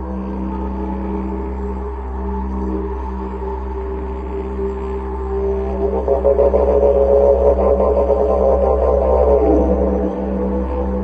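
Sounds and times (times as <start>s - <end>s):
didgeridoo drone: 0.0s - 11.0s.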